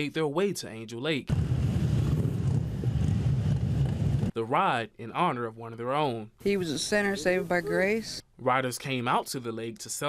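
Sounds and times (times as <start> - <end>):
motorcycle engine rumbling past: 1.3 - 4.3.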